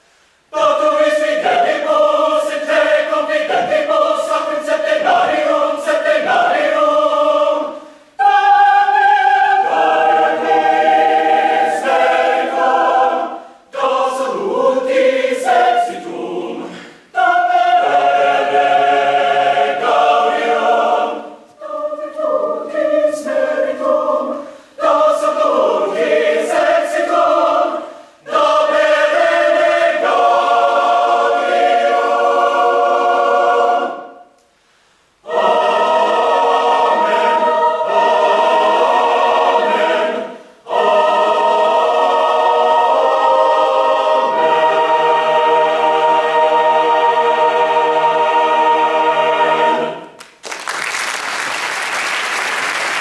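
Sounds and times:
mixed choir singing a cappella: 0.4 - 34.4, 35.2 - 50.2.

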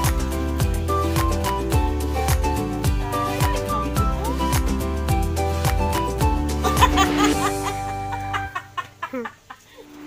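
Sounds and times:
background music: 0.0 - 9.2.

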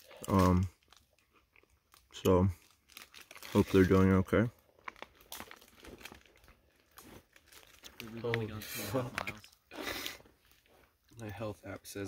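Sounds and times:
crinkling and rustling: 0.0 - 12.0
person speaking: 8.0 - 9.5.

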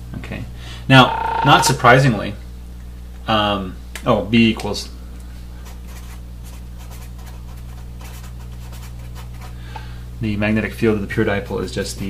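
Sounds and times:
steady low hum: 0.0 - 12.0
felt-tip marker writing on paper: 5.8 - 9.5.

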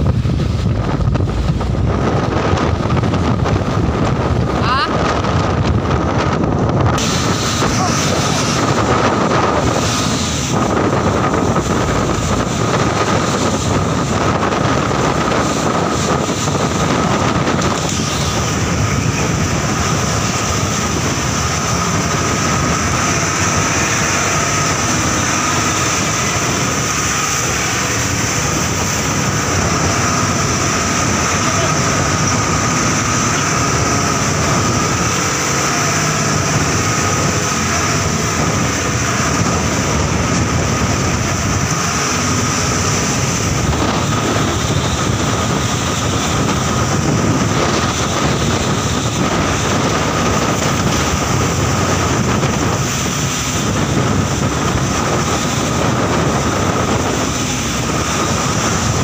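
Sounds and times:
boat engine running: 0.0 - 59.0
waves: 0.0 - 59.0
wind buffeting microphone: 0.0 - 59.0.

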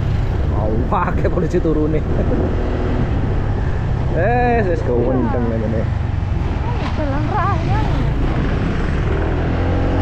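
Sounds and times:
motorcycle engine: 0.0 - 10.0
road noise: 0.0 - 10.0
wind rushing over microphone: 0.0 - 10.0.

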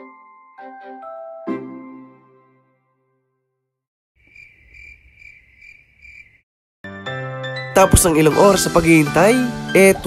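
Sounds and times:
crickets chirping: 4.2 - 6.4.

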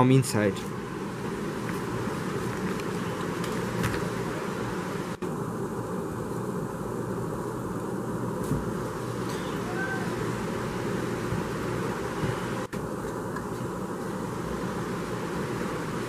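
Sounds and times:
low hum and hiss: 0.0 - 16.0.

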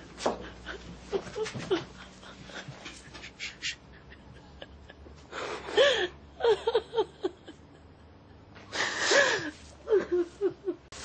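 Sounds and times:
woman sobbing: 0.4 - 5.0, 5.7 - 8.2, 8.8 - 11.0.

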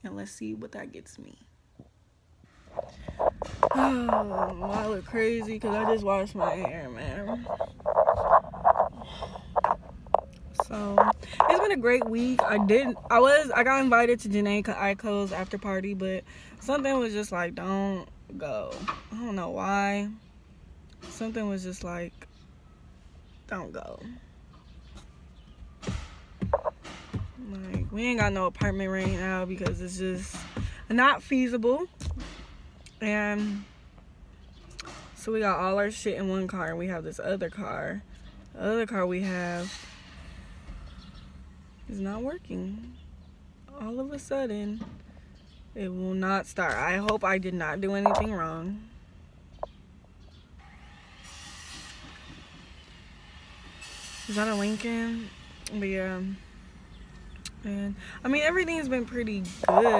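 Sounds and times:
low steady rumble: 0.0 - 25.8
woman breathing: 2.8 - 4.2, 9.0 - 9.7, 11.2 - 11.5.

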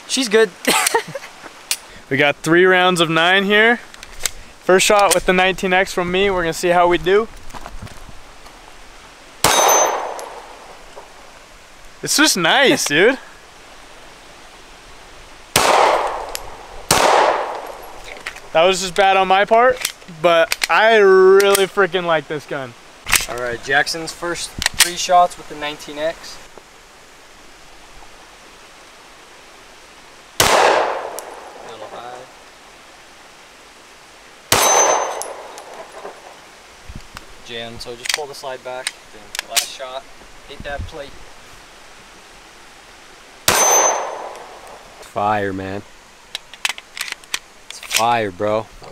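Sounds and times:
outdoor background hiss: 0.0 - 48.9
pistol shots with echo: 9.4 - 10.7, 15.6 - 17.8, 30.4 - 31.6, 34.5 - 36.2, 43.5 - 44.6
man's voice: 12.0 - 13.2.

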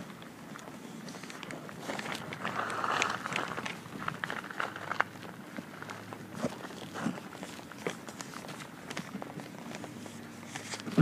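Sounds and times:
soft footsteps walking slowly: 0.0 - 11.0.

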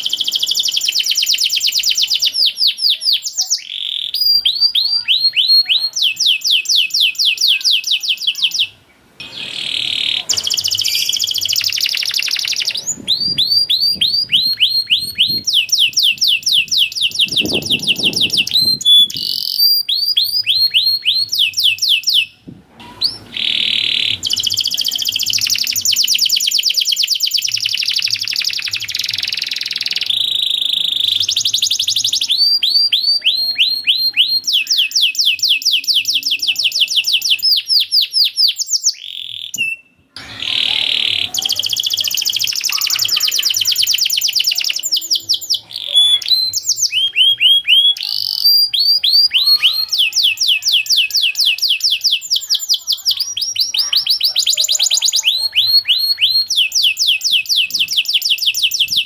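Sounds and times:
canary singing trills: 0.0 - 59.0.

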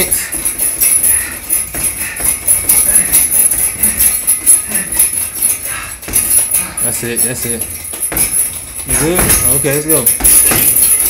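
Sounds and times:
gloved punches on heavy bag: 0.0 - 5.0, 5.7 - 6.6, 7.7 - 11.0
chains jangling and rattling: 0.0 - 11.0.

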